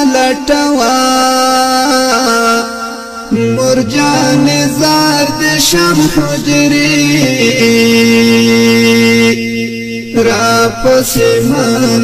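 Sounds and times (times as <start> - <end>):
person singing wordless chant: 0.0 - 12.0.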